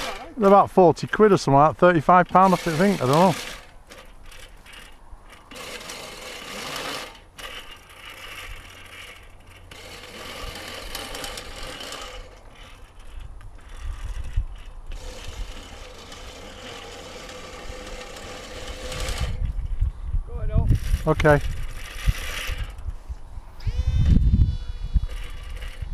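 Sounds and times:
wind rumble on microphone: 0:13.0 - 0:15.6, 0:18.8 - 0:25.9
electric motor high whine: 0:23.5 - 0:25.9.

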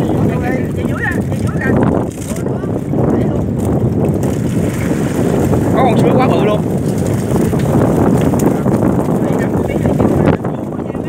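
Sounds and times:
boat engine running: 0:00.0 - 0:11.0
wind on microphone: 0:00.0 - 0:11.0.

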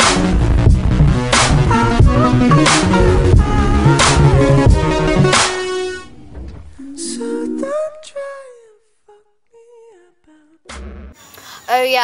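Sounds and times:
dull thump: 0:04.7 - 0:06.8
person humming a tune: 0:06.8 - 0:10.6.

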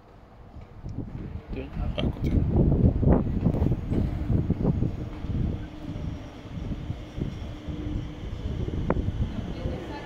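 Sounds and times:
metro train humming and rumbling: 0:00.0 - 0:10.0
wind on microphone: 0:00.4 - 0:10.0.

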